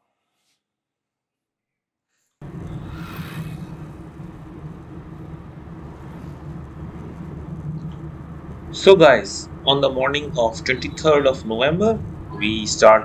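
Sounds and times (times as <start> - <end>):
car engine drone: 2.4 - 13.0
road noise inside car: 2.4 - 13.0.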